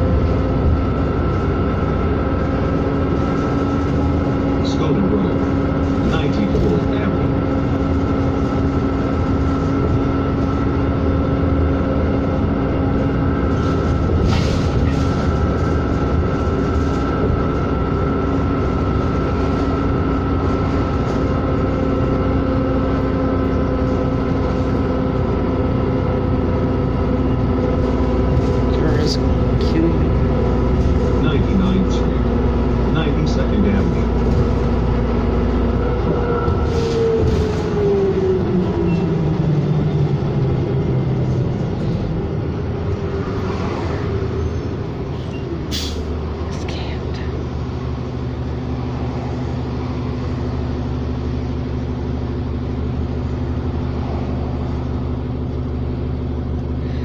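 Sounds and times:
bus engine drone: 0.0s - 57.0s.

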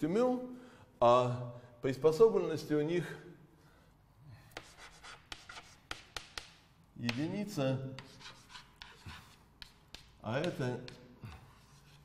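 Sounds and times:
chalk scratching on blackboard: 4.5s - 7.4s, 8.0s - 12.0s
chalk tapping on board: 4.6s - 12.0s.

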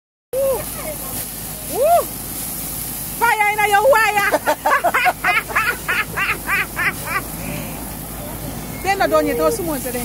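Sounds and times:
burgers sizzling on a grill: 0.4s - 10.0s.

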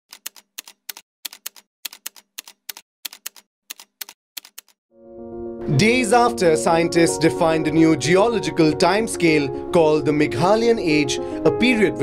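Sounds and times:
typewriter keystroke clicks: 0.1s - 4.8s.

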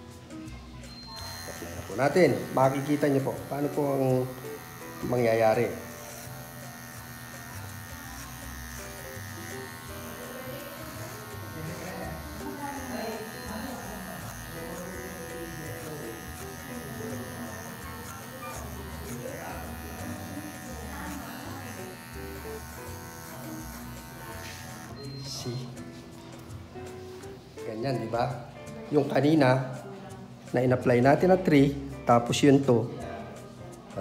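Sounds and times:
background music: 0.0s - 34.0s
electric hair clipper buzzing: 1.1s - 25.8s.

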